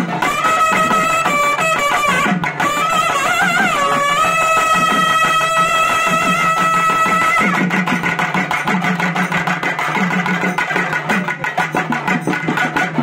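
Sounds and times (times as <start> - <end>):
fast steady drumming: 0.0 - 13.0.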